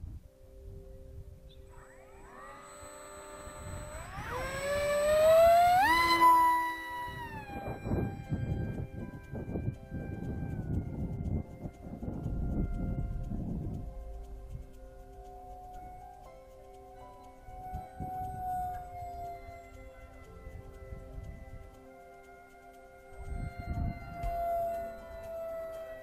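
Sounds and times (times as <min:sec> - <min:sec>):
wind buffeting microphone: 0:00.0 - 0:16.3, 0:16.9 - 0:22.2, 0:23.0 - 0:26.0
electric motor whine: 0:01.5 - 0:26.0.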